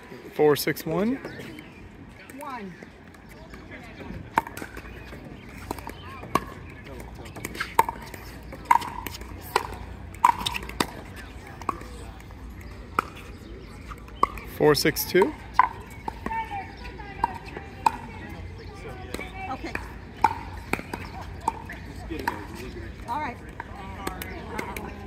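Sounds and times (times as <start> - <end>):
paddles hitting plastic ball: 4.3 - 13.3.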